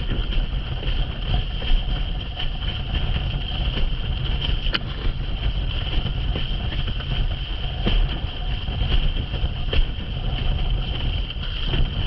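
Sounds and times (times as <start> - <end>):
board splashing over choppy sea: 0.0 - 12.0
wind buffeting microphone: 0.0 - 12.0.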